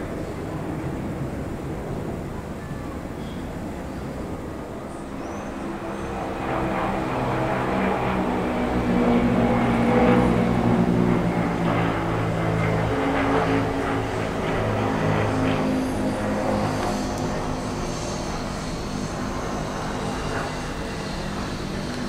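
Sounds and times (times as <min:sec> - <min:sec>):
propeller planes droning: 0:00.0 - 0:22.0.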